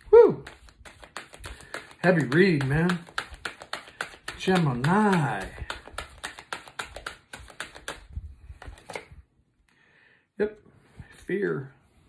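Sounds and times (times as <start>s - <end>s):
cards being shuffled: 0.1s - 9.2s.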